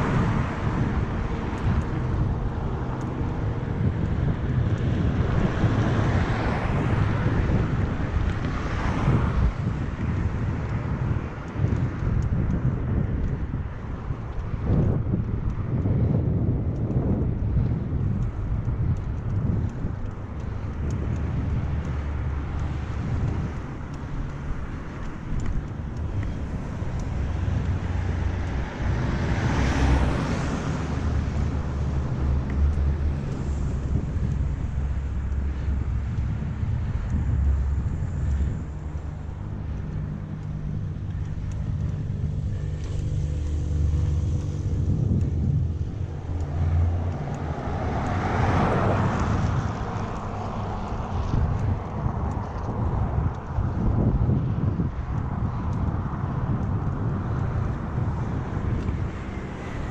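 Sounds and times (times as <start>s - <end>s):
bike rolling on paved road: 0.0s - 59.9s
motor vehicles passing: 0.0s - 59.9s
wind rumbling on microphone: 0.0s - 59.9s.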